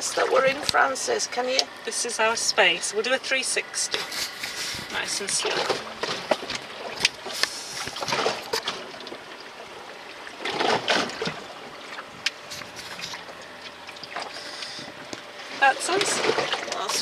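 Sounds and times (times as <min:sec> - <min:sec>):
waves sloshing against boat hull: 0:00.0 - 0:17.0.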